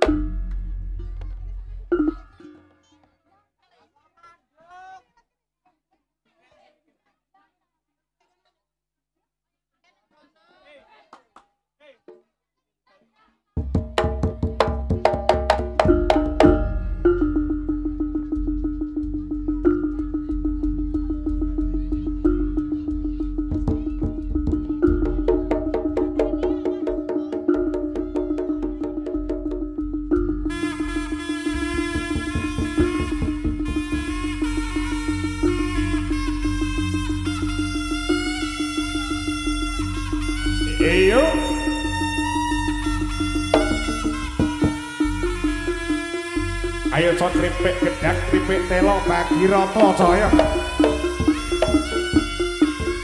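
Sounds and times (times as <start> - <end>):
tuned gong strikes: 0.0 - 2.6, 15.8 - 26.4
drum strokes: 0.0 - 2.9, 13.6 - 53.0
gamelan music: 0.0 - 3.0, 14.0 - 53.0
faint crowd voices: 16.8 - 29.5
person shouting: 47.1 - 51.1.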